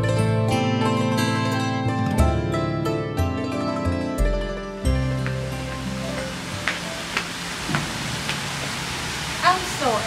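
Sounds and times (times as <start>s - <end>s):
outdoor ambience hiss: 4.8s - 10.0s
footsteps on brick path: 4.9s - 8.8s.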